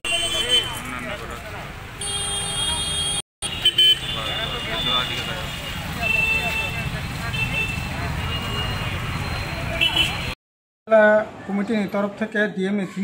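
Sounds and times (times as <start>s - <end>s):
street traffic: 0.0s - 13.0s.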